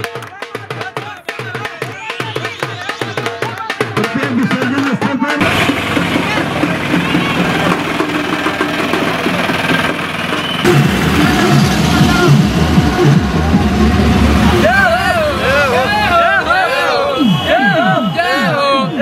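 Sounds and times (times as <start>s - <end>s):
drumming: 0.0s - 17.8s
crowd noise: 0.0s - 19.0s
low engine rumble: 5.4s - 17.2s
group of voices shouting a chant: 11.8s - 19.0s.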